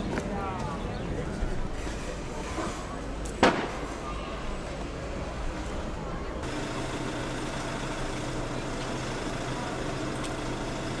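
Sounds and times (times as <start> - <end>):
distant street traffic: 0.0 - 11.0.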